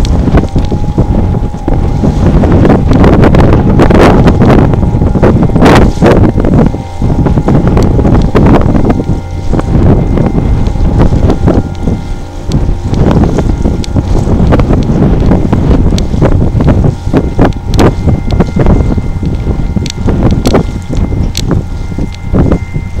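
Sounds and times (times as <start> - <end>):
faint steady hum: 0.0 - 23.0
wind buffeting microphone: 0.0 - 23.0.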